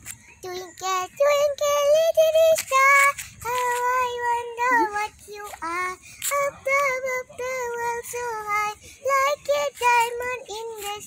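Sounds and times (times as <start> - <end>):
child singing: 0.4 - 11.0.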